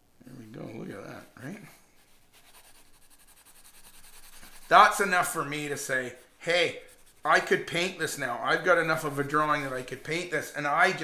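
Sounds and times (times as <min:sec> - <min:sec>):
pencil scratching on paper: 0:01.0 - 0:10.3.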